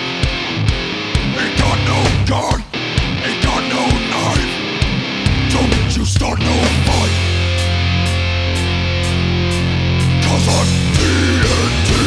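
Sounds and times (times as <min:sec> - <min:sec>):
bass guitar: 0:00.0 - 0:12.0
distorted electric guitars: 0:00.0 - 0:12.0.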